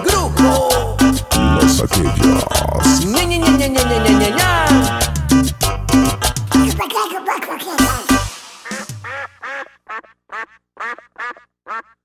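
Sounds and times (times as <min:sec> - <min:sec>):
duck quacking: 0:01.4 - 0:03.1, 0:08.6 - 0:12.0.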